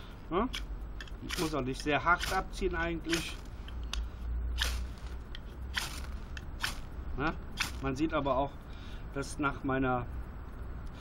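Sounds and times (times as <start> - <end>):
knife spine rasping on ferro rod: 1.3 - 3.4.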